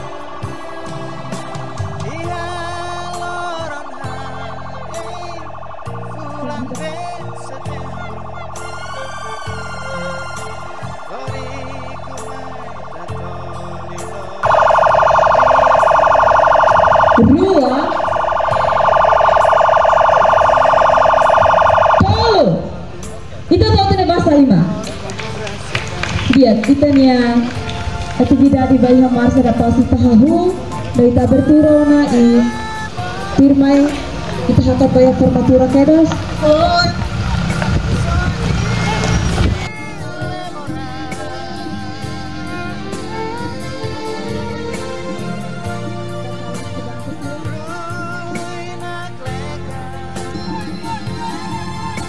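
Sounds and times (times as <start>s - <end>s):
buzzing siren-like blare: 0.0s - 24.9s, 26.4s - 39.7s
faint voices: 0.0s - 52.0s
music with strings: 0.0s - 52.0s
pickup truck passing: 0.0s - 52.0s
person calling out: 22.0s - 22.8s.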